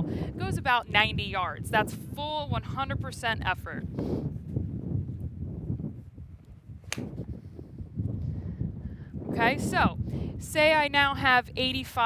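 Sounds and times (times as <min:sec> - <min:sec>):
wind rumble on microphone: 0:00.0 - 0:12.0
golf club striking ball: 0:06.8 - 0:07.2.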